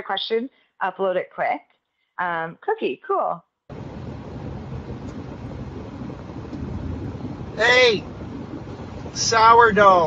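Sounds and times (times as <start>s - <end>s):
car interior rumble and hiss: 3.7s - 10.0s.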